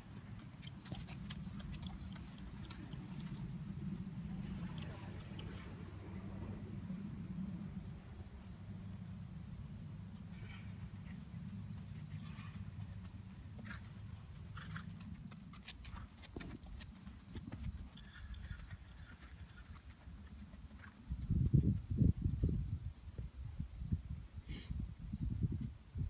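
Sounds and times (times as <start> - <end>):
hoofbeats on gravel: 0.0 - 5.3, 10.4 - 21.9
insects chirring: 0.0 - 26.0
steady low rumble: 1.2 - 15.4.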